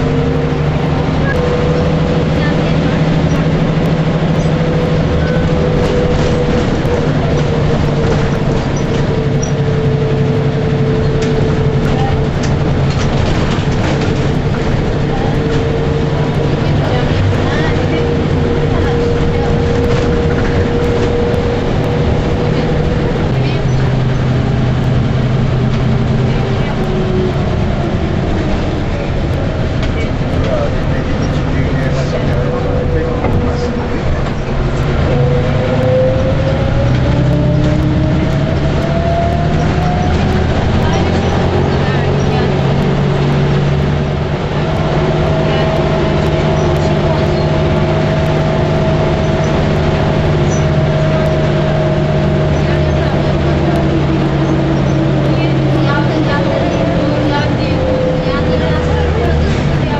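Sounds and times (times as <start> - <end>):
bus engine humming and whining: 0.0 - 59.9.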